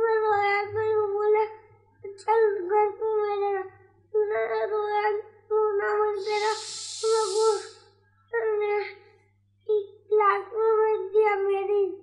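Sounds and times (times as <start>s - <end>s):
child talking in sing-song voice: 0.0s - 7.7s, 8.4s - 9.0s, 9.7s - 12.0s.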